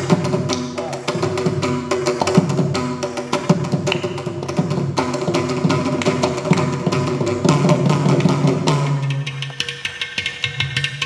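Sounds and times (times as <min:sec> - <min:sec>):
mridangam drum strokes: 0:00.0 - 0:11.0.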